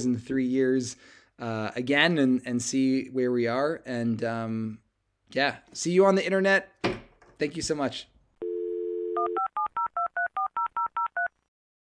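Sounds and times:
telephone dial tone: 8.4s - 11.3s.

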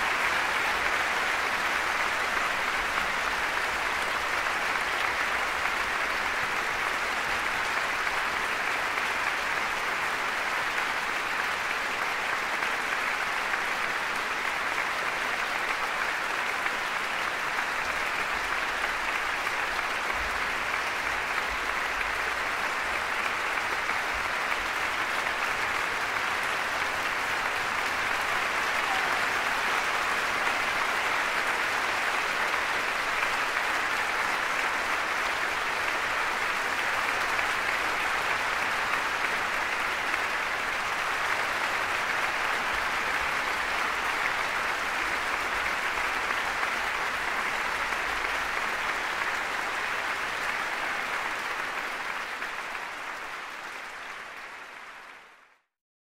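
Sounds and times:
audience applauding: 0.0s - 55.7s.

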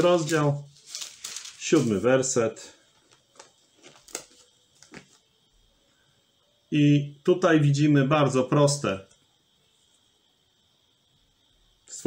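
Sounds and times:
paper rustling: 0.0s - 2.4s, 3.0s - 5.2s.

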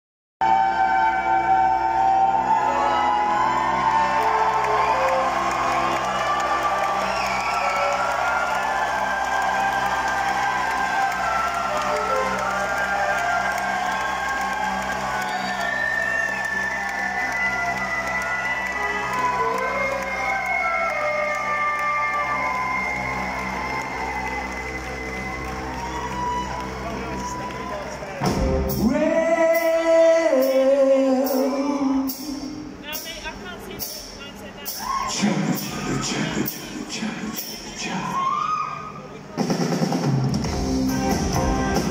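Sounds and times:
crowd cheering and whooping: 1.1s - 29.6s, 34.7s - 36.5s, 37.8s - 39.2s
rock band playing: 27.3s - 30.7s, 39.3s - 41.9s.

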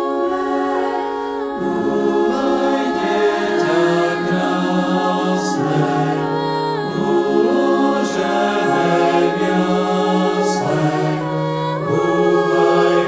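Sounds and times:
choir singing unaccompanied: 0.0s - 13.0s.

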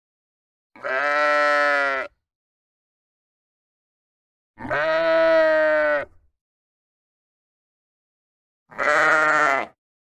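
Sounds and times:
sheep baa: 0.8s - 2.2s, 4.6s - 6.2s, 8.7s - 9.8s.

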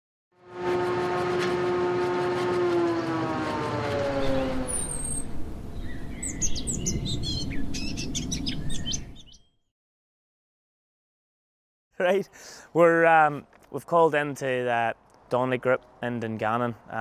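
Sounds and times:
pitched drone sliding down: 0.4s - 7.7s
birds chirping rapidly: 3.8s - 9.6s.

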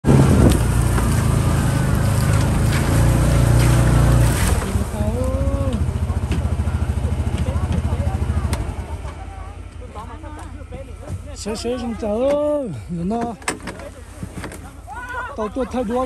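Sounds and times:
engine running and idling: 0.0s - 16.0s.

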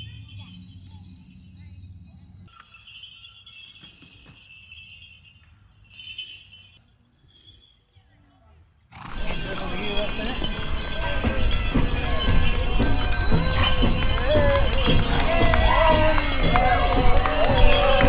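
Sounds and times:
small bells jingling: 0.0s - 18.0s
street noise: 0.0s - 18.0s
crowd voices: 9.1s - 18.0s
faint hoof knock: 9.1s - 18.0s.

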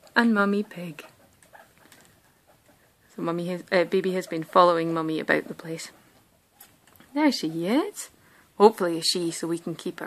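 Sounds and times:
guinea pigs moving on bedding: 0.0s - 8.0s.

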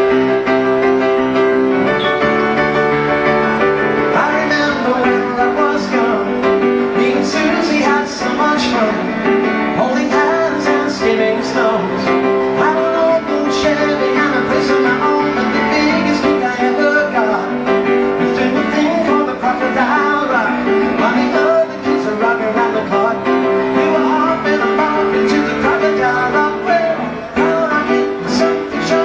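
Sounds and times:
grand piano playing chords: 0.0s - 29.0s.

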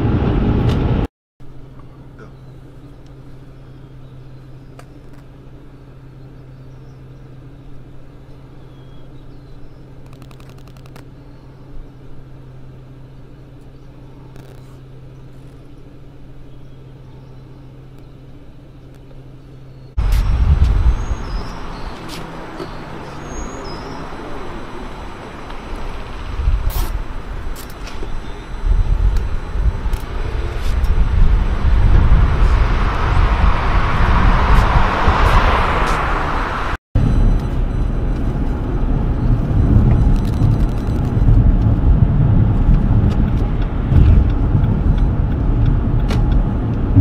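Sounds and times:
road traffic rumble: 0.0s - 47.0s
steady low hum: 0.0s - 47.0s
wind on microphone: 20.0s - 22.4s, 26.0s - 47.0s.

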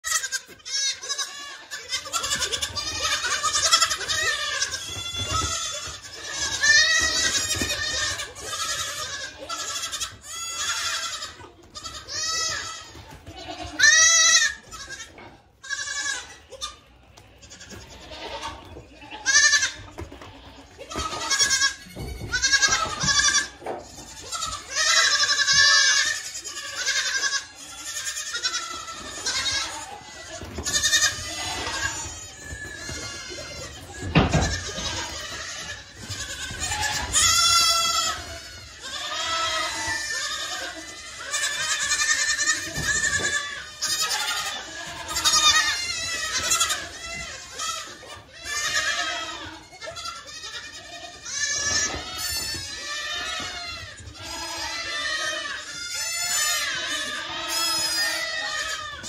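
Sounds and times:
goats bleating: 0.0s - 59.0s.

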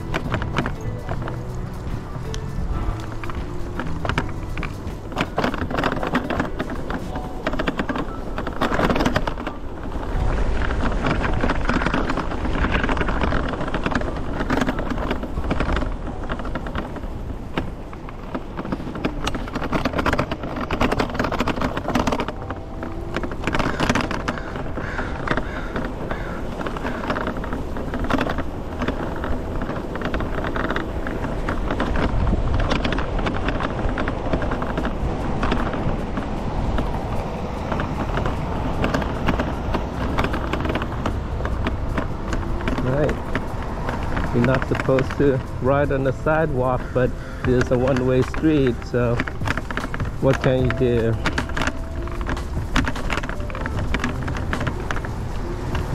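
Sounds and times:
electric scooter rumbling and rattling: 0.0s - 55.9s
wind buffeting microphone: 0.0s - 55.9s
knocks from road bumps: 10.8s - 55.9s.

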